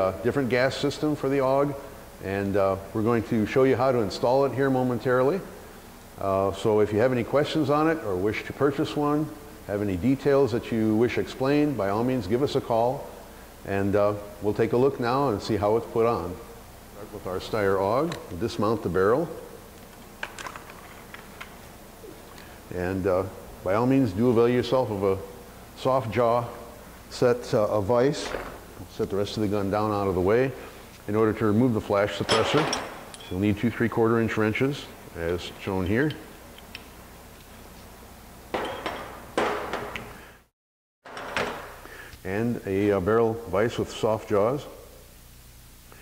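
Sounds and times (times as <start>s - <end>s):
wrenches clanking on metal: 32.2s - 33.5s.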